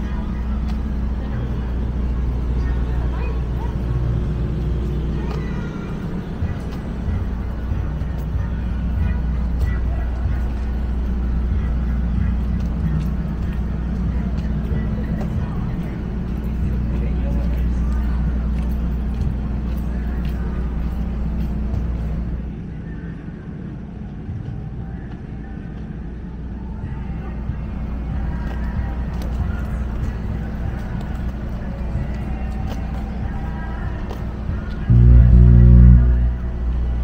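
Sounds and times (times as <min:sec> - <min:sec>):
distant voices: 0:00.0 - 0:37.0
road traffic rumble: 0:00.0 - 0:37.0.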